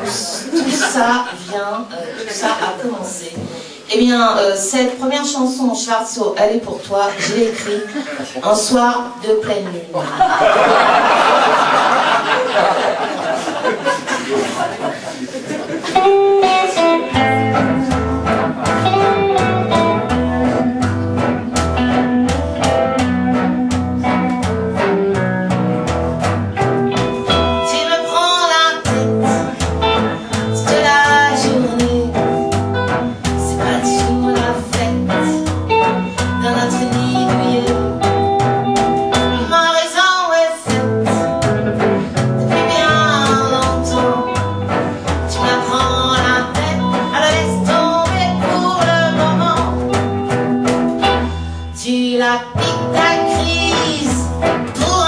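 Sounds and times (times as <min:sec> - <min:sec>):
swing blues band playing: 0:00.0 - 0:09.6, 0:10.4 - 0:55.0
plucked double bass: 0:10.3 - 0:13.3, 0:15.9 - 0:39.8, 0:40.6 - 0:55.0
woman singing: 0:27.3 - 0:38.3, 0:39.2 - 0:41.5, 0:42.4 - 0:49.9, 0:51.0 - 0:55.0.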